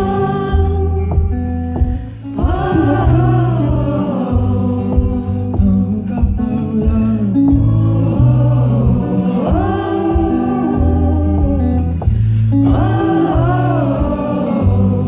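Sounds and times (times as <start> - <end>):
acoustic guitar: 0.0 - 15.0
held low notes: 0.0 - 15.0
man singing into a microphone: 2.4 - 11.8.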